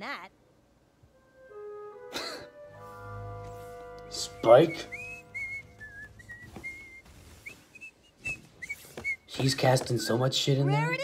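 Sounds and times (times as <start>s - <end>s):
short high whistled notes: 2.7s - 10.1s.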